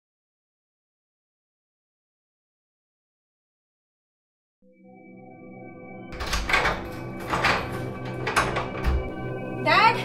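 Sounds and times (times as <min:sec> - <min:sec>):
music: 0:04.6 - 0:10.0
banging on door: 0:06.2 - 0:09.2.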